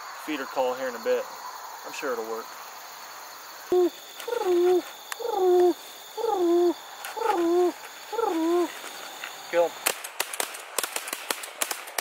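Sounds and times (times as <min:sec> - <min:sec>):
pigeon call coos: 0:03.7 - 0:08.8.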